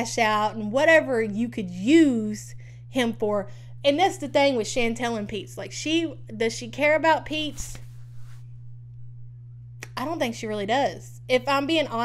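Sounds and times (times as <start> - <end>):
woman speaking: 0.0 - 7.8, 9.8 - 12.0
low electrical hum: 0.0 - 12.0.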